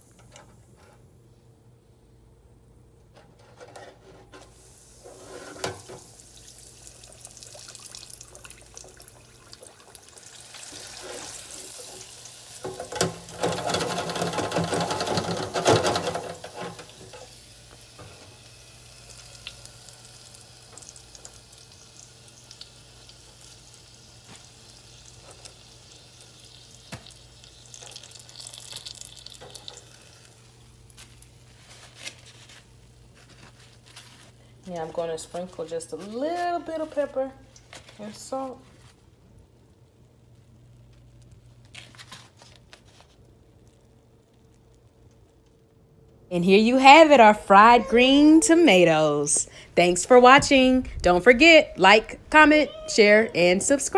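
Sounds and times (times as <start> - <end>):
fryer humming: 0.0 - 41.6, 44.5 - 53.9
frying hiss: 4.3 - 41.7.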